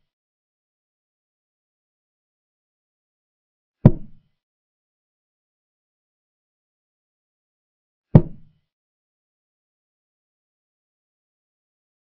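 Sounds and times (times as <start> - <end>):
hollow wooden knock: 8.2 - 8.5.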